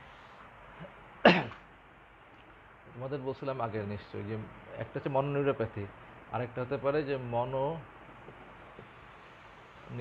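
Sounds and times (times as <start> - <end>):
faint hiss: 0.0 - 10.0
man clearing throat: 1.2 - 1.6.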